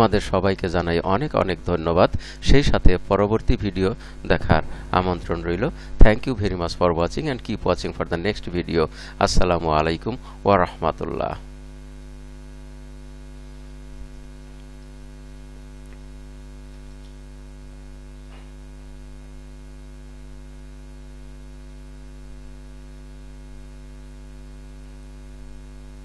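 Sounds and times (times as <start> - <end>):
electrical mains hum: 0.0 - 26.0.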